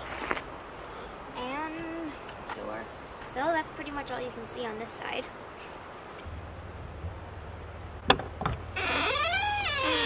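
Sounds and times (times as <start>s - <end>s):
door hinges creaking: 8.1s - 10.0s.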